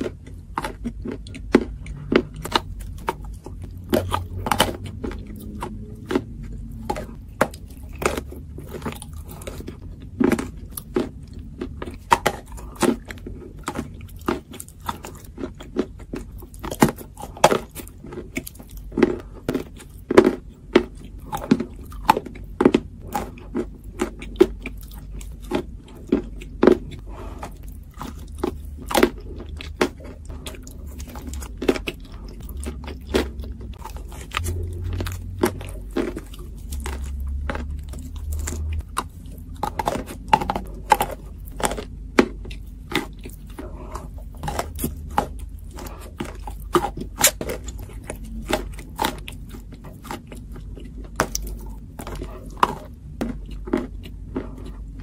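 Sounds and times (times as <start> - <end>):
clay crunching in mouth: 0.0 - 55.0.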